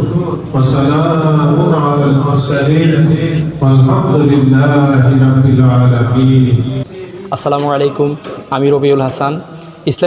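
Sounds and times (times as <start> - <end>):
man chanting a prayer: 0.0 - 10.0.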